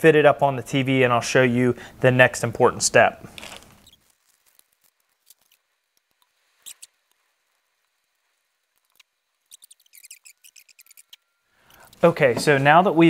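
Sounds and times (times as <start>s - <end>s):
hands rustling paper sheet: 3.2s - 11.0s.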